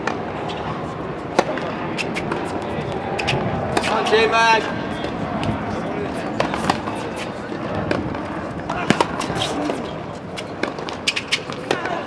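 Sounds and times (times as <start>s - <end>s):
tennis balls hit with rackets: 0.0s - 4.2s, 6.2s - 12.0s.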